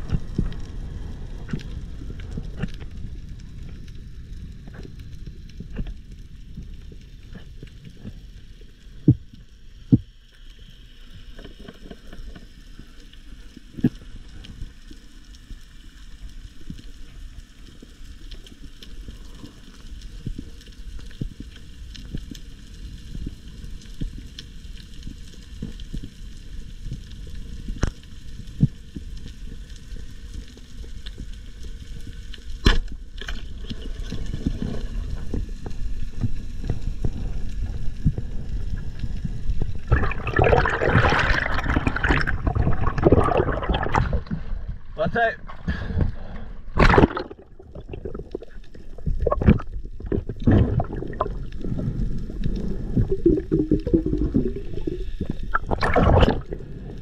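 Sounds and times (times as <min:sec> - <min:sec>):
muffled underwater rumble: 0:00.0 - 0:57.0
rush of water and bubbles: 0:00.0 - 0:57.0
underwater clicks and crackles: 0:00.0 - 0:57.0.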